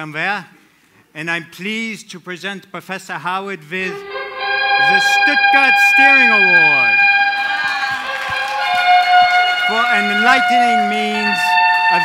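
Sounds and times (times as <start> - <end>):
held high musical note: 3.9 - 12.0
audience applauding: 4.5 - 12.0.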